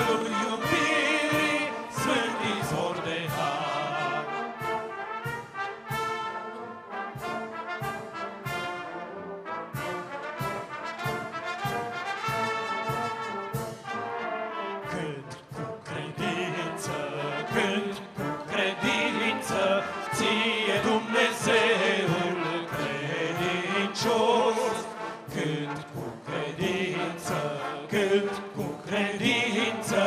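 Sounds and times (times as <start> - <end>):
brass band playing a hymn: 0.0 - 30.0.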